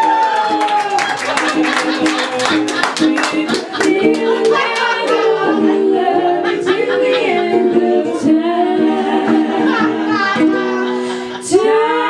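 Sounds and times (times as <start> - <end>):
strummed ukulele: 0.3 - 6.4
women singing in harmony: 2.2 - 12.0.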